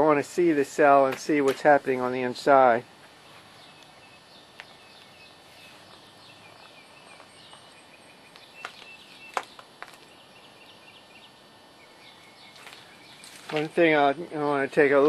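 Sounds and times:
birds chirping faintly: 2.1 - 15.0.

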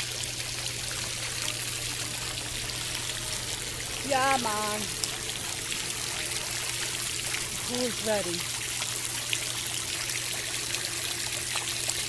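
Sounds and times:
churning water rushing: 0.0 - 12.0
low steady hum: 0.0 - 12.0.

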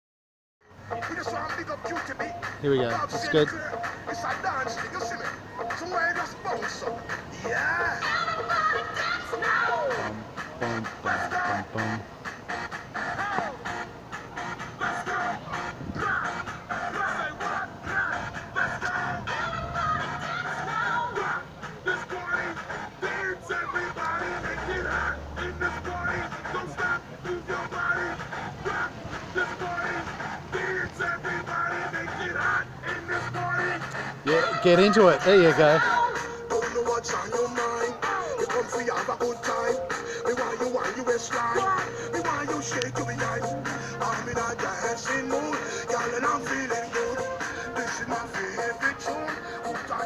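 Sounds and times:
dance music with bass line: 0.8 - 50.0.

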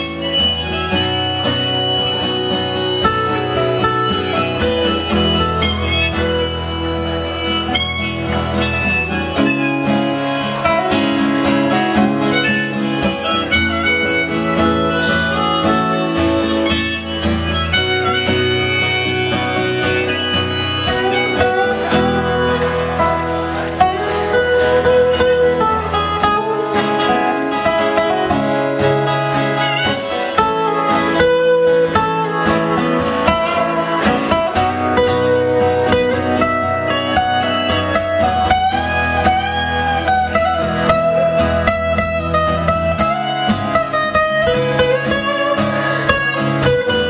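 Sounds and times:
harmonica bent notes: 0.0 - 47.0
strummed acoustic guitars: 0.0 - 47.0.

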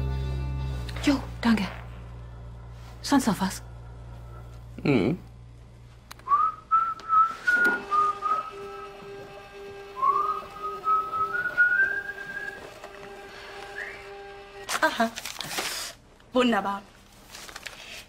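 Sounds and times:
soft background music: 0.0 - 5.2, 7.3 - 14.7
person whistling a tune: 6.3 - 8.7, 10.0 - 12.6, 13.7 - 14.1.

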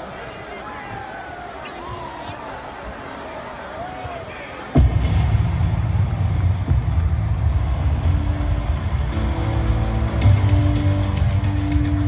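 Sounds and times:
bass-heavy music over pa: 4.8 - 12.0.

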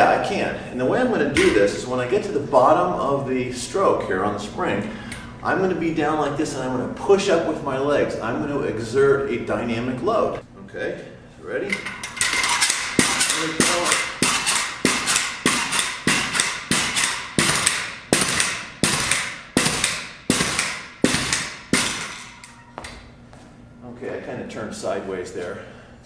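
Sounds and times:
pogo stick bouncing with metallic clank: 11.8 - 23.0.

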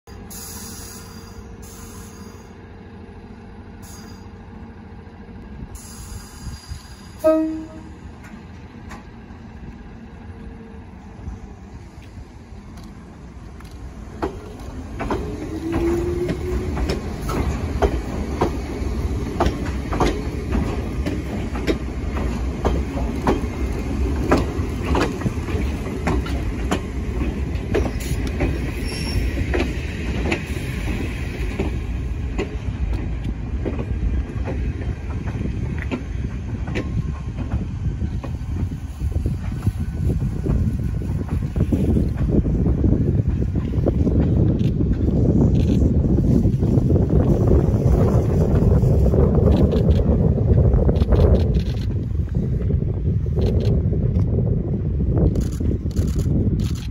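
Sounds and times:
train low rumble: 0.0 - 56.9
electric train rising tone: 0.1 - 23.0
train wheels clattering over rails: 12.7 - 51.9.

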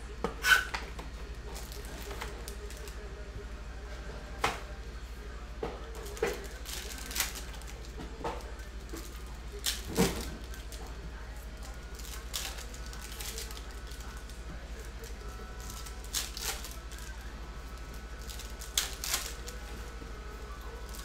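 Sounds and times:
steady low hum: 0.0 - 21.0
foil wrappers crinkling: 0.5 - 3.1, 5.8 - 21.0
cards being handled: 11.6 - 17.2, 17.8 - 19.9.

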